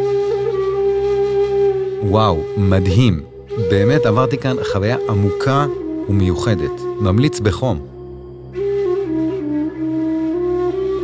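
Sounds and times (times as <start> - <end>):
flute holding long note: 0.0 - 11.0
low sustained drone: 2.4 - 11.0.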